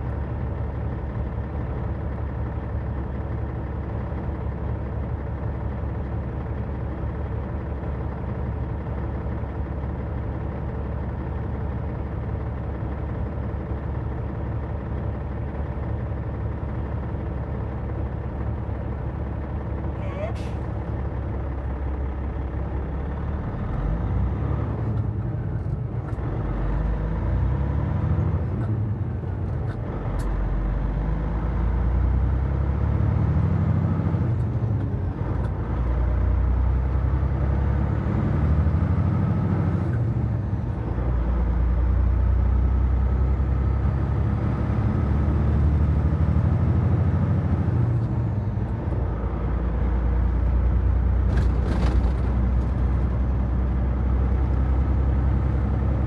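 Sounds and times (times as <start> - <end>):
diesel truck engine: 0.0 - 56.0.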